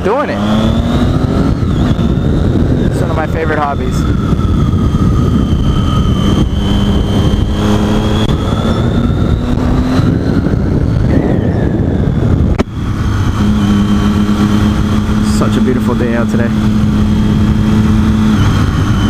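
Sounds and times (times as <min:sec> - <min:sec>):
motorcycle engine running: 0:00.0 - 0:19.0
wind noise on microphone: 0:00.0 - 0:19.0.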